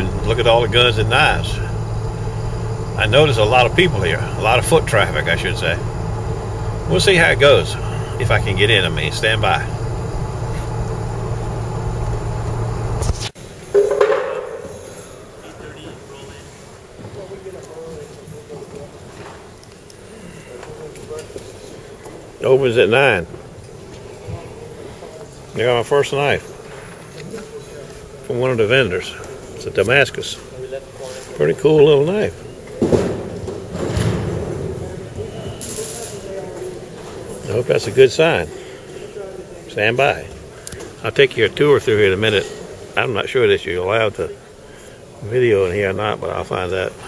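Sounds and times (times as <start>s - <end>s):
indistinct background voices: 0.0s - 12.7s, 14.7s - 45.6s
car cabin road rumble: 0.0s - 13.4s
handling noise: 0.0s - 15.2s.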